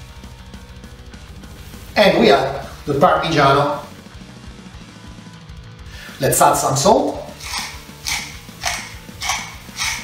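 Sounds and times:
salt mill grinding: 7.3 - 10.0.

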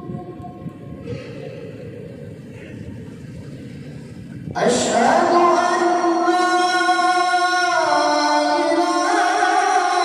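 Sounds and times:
low rumble of a hall: 0.0 - 10.0
chanting voice over loudspeakers: 4.5 - 10.0.

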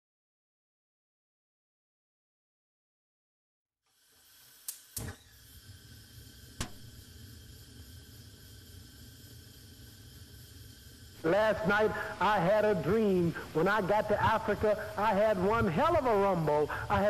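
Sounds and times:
gas flame hissing: 3.9 - 17.0
gas burner igniter clicks: 4.3 - 7.4.

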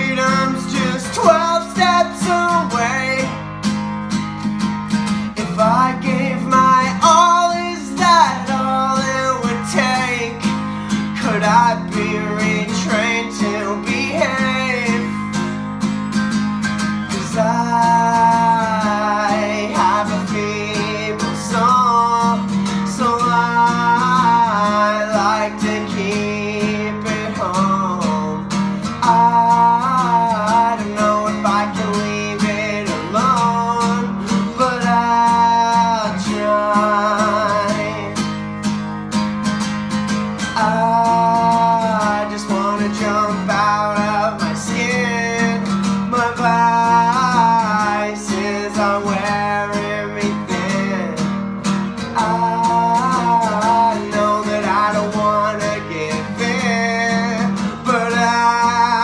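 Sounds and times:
man singing: 0.0 - 3.5, 5.2 - 15.6, 17.0 - 38.5, 40.4 - 59.0
strummed acoustic guitar: 0.0 - 59.0.

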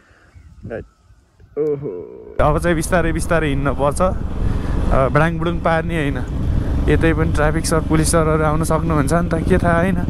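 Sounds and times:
motorcycle riding with wind: 2.4 - 10.0.

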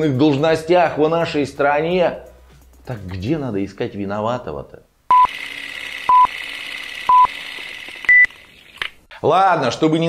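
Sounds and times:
short beeps: 5.1 - 5.3.

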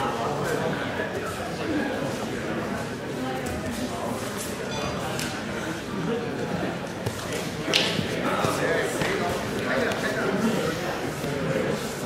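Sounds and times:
voices calling out in echoing hall: 0.0 - 12.0.

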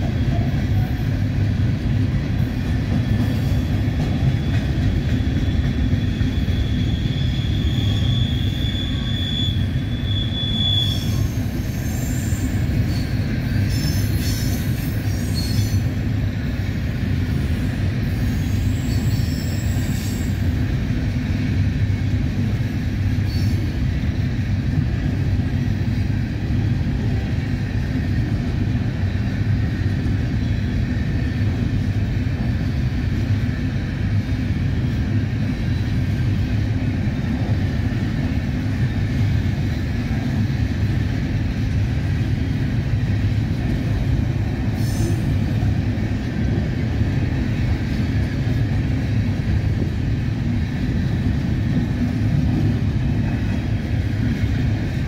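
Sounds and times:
freight cars rumbling on rails: 0.0 - 55.0
train wheel squeal: 2.3 - 16.4, 17.2 - 21.2, 21.9 - 24.2, 32.6 - 36.8, 44.1 - 49.8
wheel squeals and screeches: 5.2 - 15.8.

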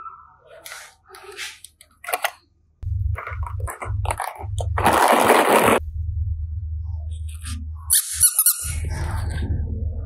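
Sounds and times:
steady low hum: 2.8 - 5.0, 5.6 - 7.9
squeaky rubber toy squeaks: 7.9 - 8.8.

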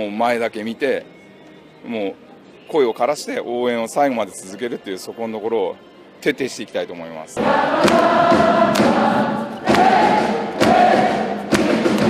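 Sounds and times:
crowd singing in unison: 7.4 - 12.0
heavy thumping beat: 7.4 - 12.0.

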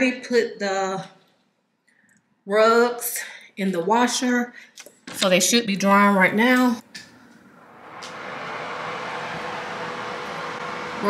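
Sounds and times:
exhaust fan whirring: 6.9 - 11.0.

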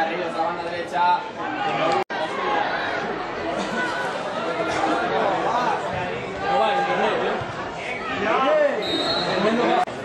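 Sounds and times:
voices shouting and talking: 0.0 - 10.0.

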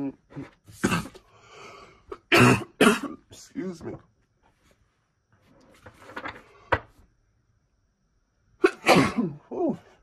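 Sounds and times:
woman sneezing: 8.6 - 9.7.

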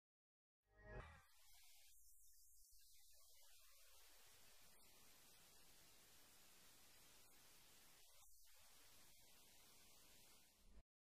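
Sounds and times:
faint hiss: 1.2 - 10.8.

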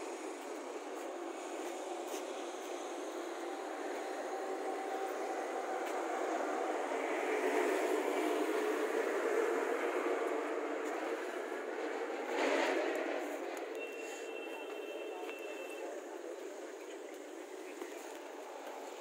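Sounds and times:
vehicle noise: 0.0 - 19.0.

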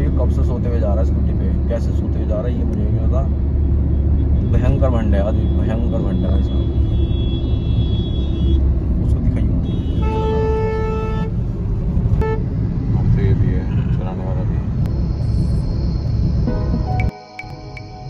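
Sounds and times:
road and engine rumble: 0.0 - 18.0
vehicle horn: 5.3 - 8.6, 9.6 - 11.3.

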